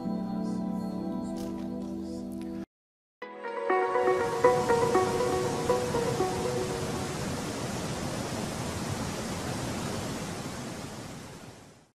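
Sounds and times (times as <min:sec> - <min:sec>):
steady rushing noise: 0:04.2 - 0:10.5.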